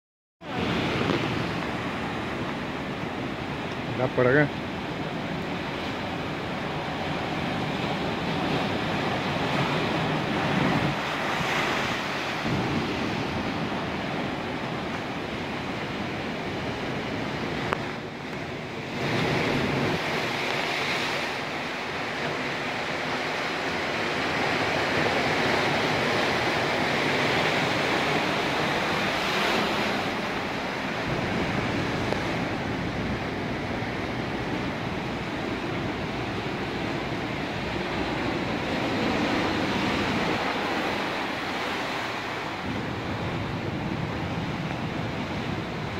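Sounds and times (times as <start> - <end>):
wind buffeting microphone: 0.4 - 4.0, 4.6 - 45.9
waves breaking over rocks: 0.4 - 45.9.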